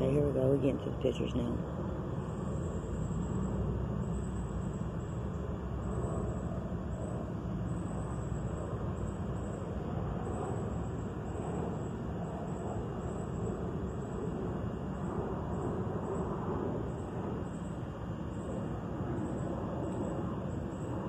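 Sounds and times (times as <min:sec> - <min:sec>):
low background rumble: 0:00.0 - 0:21.0.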